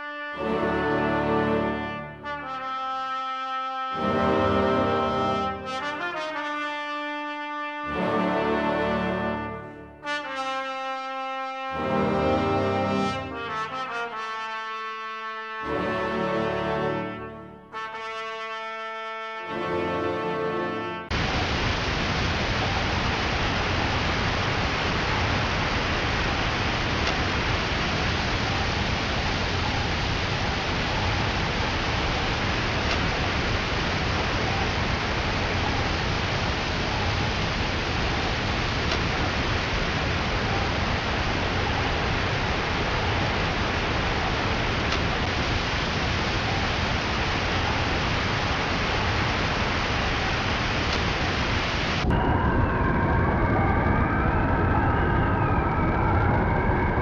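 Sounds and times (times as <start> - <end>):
steady rushing hiss: 21.1 - 52.1.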